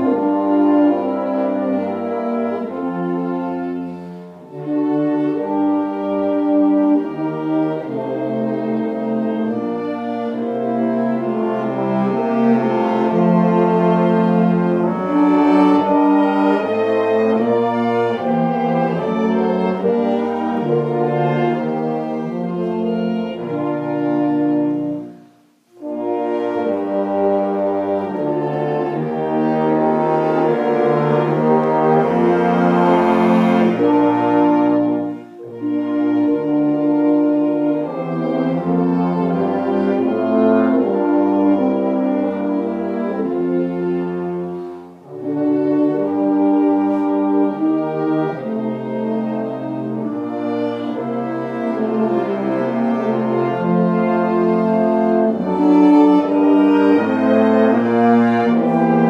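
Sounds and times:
brass ensemble music: 0.0s - 59.0s.

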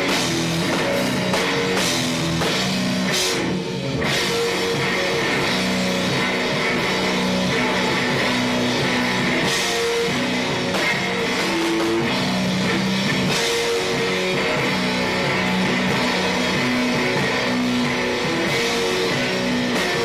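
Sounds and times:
live rock guitar and drums: 0.0s - 20.0s.

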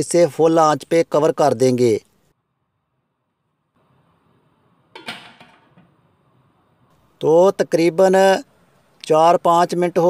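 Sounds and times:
metal lid clattering on pot: 5.0s - 6.0s.

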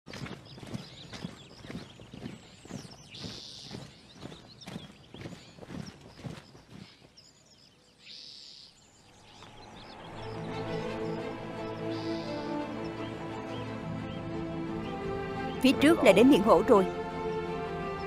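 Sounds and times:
boots marching on dirt: 0.0s - 7.7s
music: 9.6s - 18.0s.

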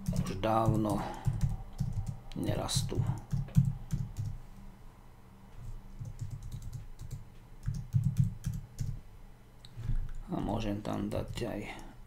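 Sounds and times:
typing on computer keyboard: 0.0s - 2.2s, 3.0s - 4.4s, 6.0s - 9.0s.

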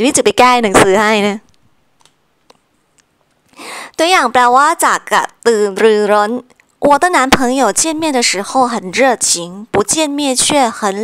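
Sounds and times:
woman's voice: 0.0s - 1.5s, 3.6s - 11.0s
computer clicks: 1.5s - 3.1s.

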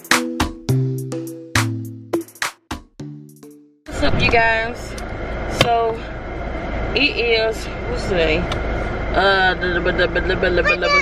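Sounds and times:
car cabin rumble: 3.9s - 11.0s.

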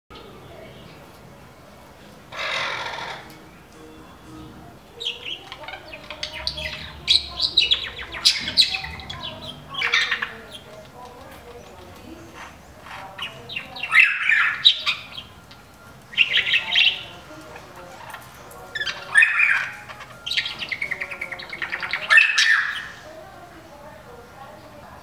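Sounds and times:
wrens calling: 2.2s - 25.0s.

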